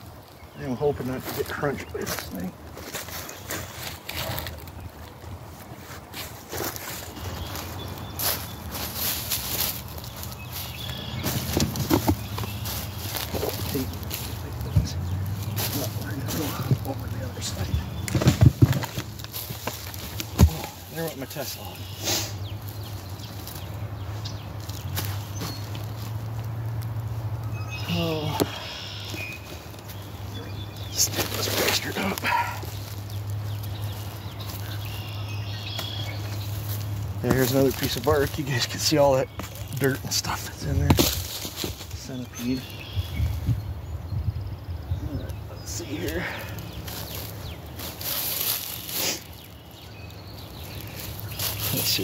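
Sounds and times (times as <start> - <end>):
rustling and scuffing: 1.0 - 43.6, 45.8 - 52.0
wood knocking and scraping: 11.2 - 20.8, 40.8 - 41.8.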